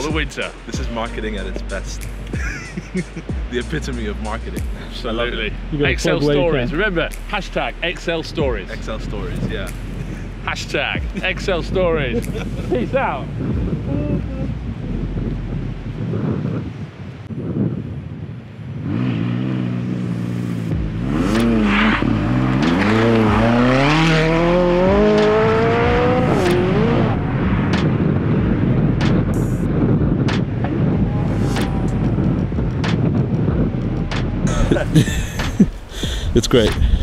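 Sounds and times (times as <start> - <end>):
steady rushing noise: 0.0 - 37.0
car engine accelerating hard: 18.8 - 35.0.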